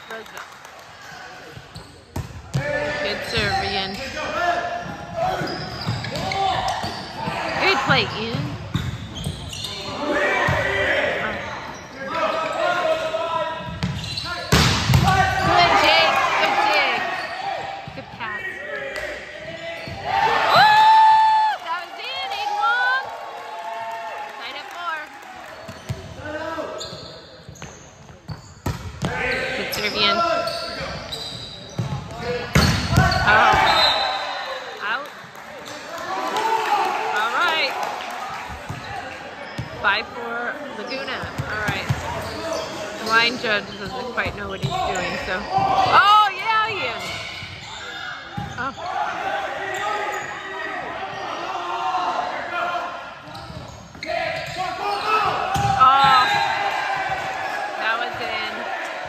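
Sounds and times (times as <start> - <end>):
players and spectators shouting: 9.7 - 27.1, 29.0 - 31.2, 32.1 - 35.0, 35.6 - 59.0.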